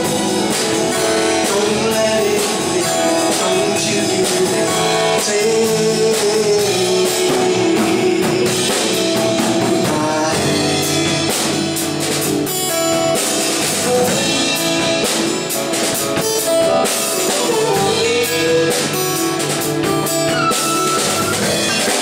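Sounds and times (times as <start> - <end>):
live band playing: 0.0 - 22.0.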